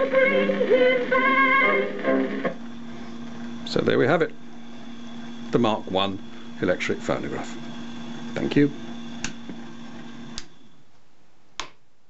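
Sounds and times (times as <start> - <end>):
machine humming: 0.0 - 10.9
sharp click: 9.2 - 9.4
switch clicking: 10.3 - 10.5.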